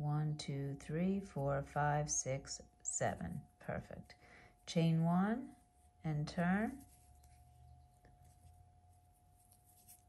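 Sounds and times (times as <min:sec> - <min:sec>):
crochet hook working yarn: 0:04.8 - 0:10.0.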